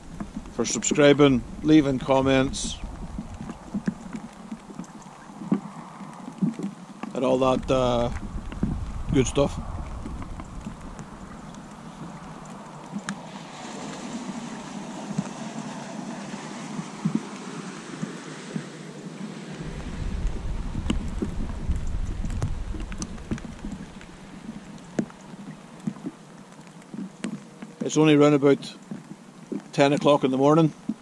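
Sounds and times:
steady noise haze: 0.0 - 5.8, 7.0 - 31.0
boat engine droning: 0.0 - 28.4.

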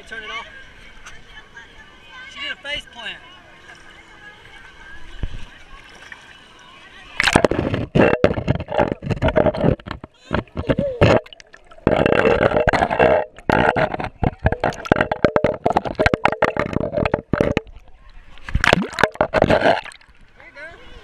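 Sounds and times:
water gurgling and splashing: 7.2 - 20.4.

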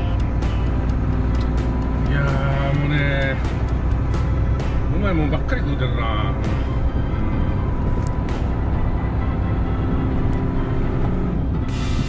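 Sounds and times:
road noise: 0.0 - 12.0
truck engine rumble: 0.0 - 12.0.

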